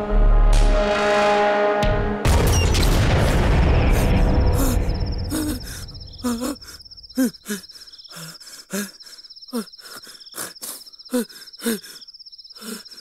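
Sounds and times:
music: 0.0 - 4.7
heavy boom: 2.2 - 4.6
crickets chirping: 3.9 - 13.0.

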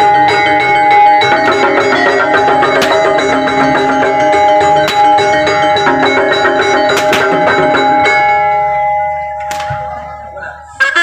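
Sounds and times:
gamelan music: 0.0 - 11.0.

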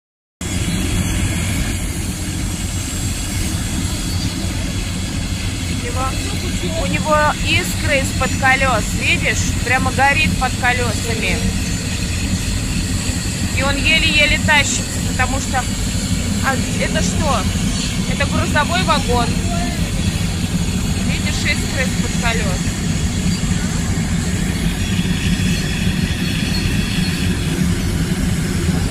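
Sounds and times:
train wheels rumbling on rail: 0.4 - 28.9.

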